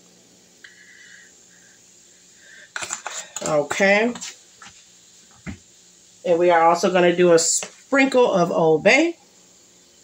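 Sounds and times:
shrimp sizzling in a pan: 0.0 - 10.0.

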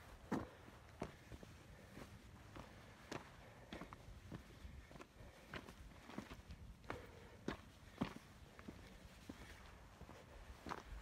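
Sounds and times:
footsteps on rocky dirt trail: 0.0 - 11.0.

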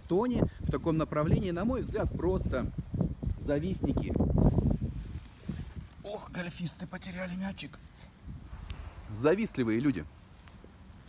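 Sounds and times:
phone microphone rumbling and rustling: 0.0 - 6.3, 7.8 - 11.0.

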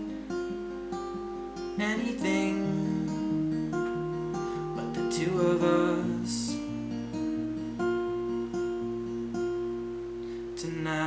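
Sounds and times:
acoustic guitar chords ringing: 0.0 - 11.0.

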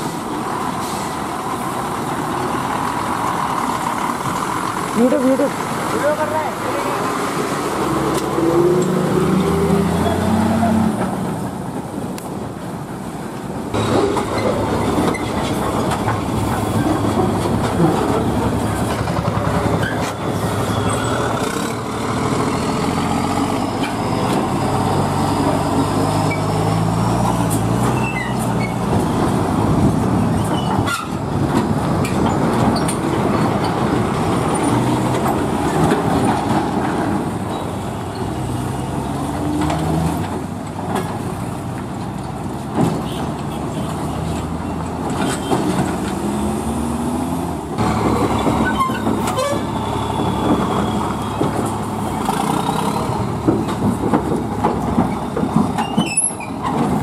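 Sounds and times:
diesel lorry engines droning: 0.0 - 57.0
lorry bodies knocking and rattling: 50.3 - 57.0.

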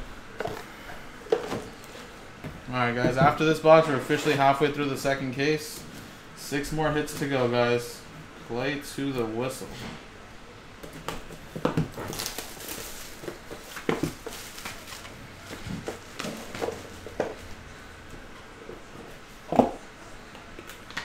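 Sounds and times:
shrink wrap crinkling: 11.8 - 17.6.

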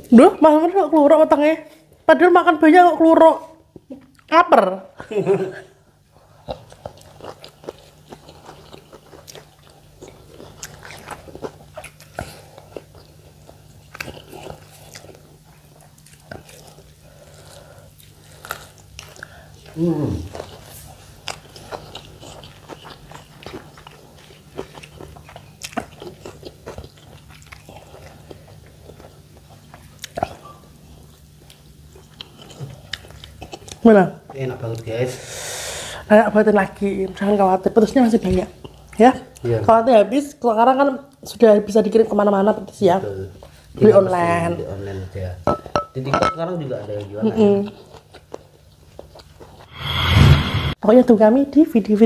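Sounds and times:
chewing and mouth smacks: 6.3 - 34.9, 47.7 - 49.7.

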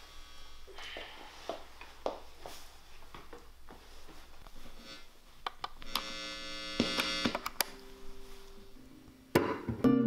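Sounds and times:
electrical buzz through amplifier: 0.0 - 1.8, 3.5 - 9.4
amplifier hum: 4.4 - 9.6.

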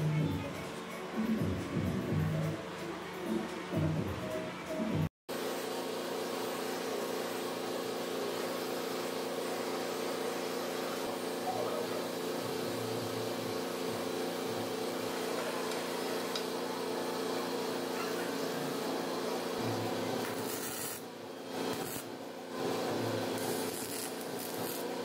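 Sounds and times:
constant machine hum: 0.0 - 25.0
welding torch flame hissing: 5.4 - 25.0.

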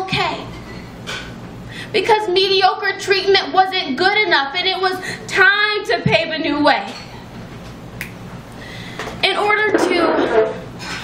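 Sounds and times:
low room hum: 0.0 - 11.0
finger snap: 8.0 - 8.2.

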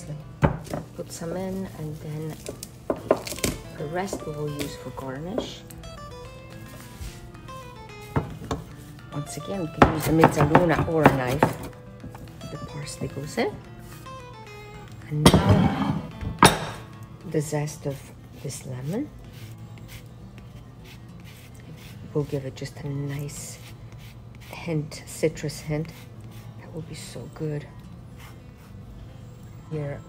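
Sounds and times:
soft background music: 0.0 - 30.0.

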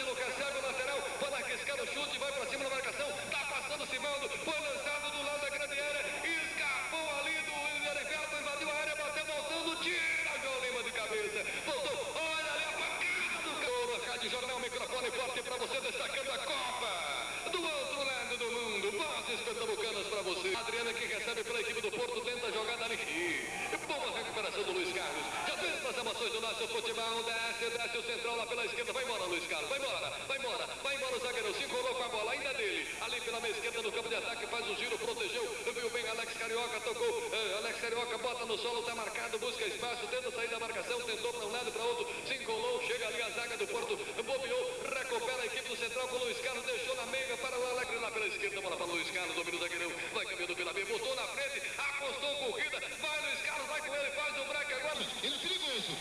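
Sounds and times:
person talking: 0.0 - 36.0.

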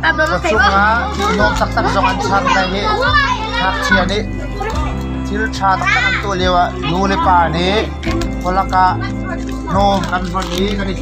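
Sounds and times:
background music: 0.0 - 11.0
children chattering and calling: 0.0 - 11.0.

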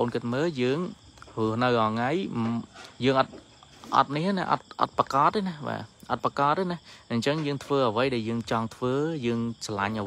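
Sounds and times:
crickets chirring: 0.0 - 10.0
man speaking: 0.0 - 10.0.

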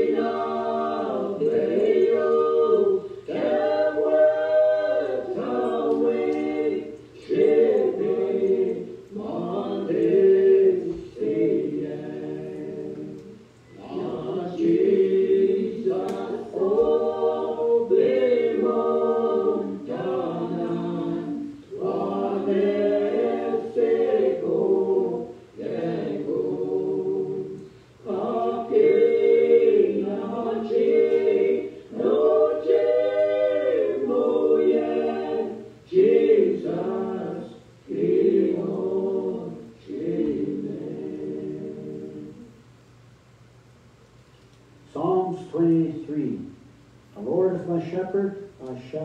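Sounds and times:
choir singing a hymn unaccompanied: 0.0 - 42.6.

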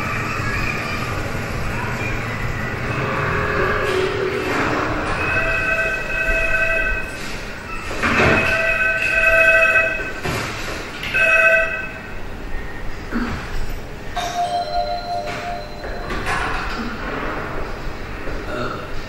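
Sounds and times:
train rumbling: 0.0 - 19.0.

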